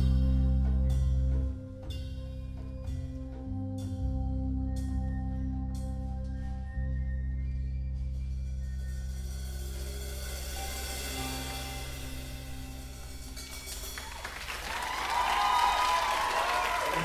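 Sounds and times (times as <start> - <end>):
audience applauding and cheering: 13.7 - 17.0.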